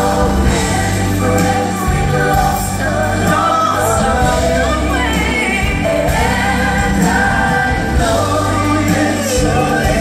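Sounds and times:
pop band with keyboards and bass: 0.0s - 10.0s
voices singing in harmony: 0.0s - 10.0s.

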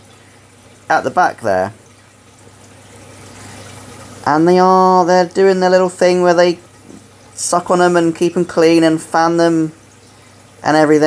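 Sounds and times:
running water in aquarium: 0.0s - 11.0s.

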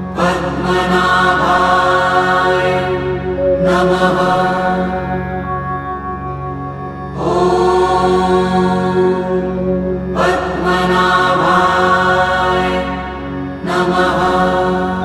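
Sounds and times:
mantra chanting to music: 0.0s - 15.0s
steady drone: 0.0s - 15.0s.

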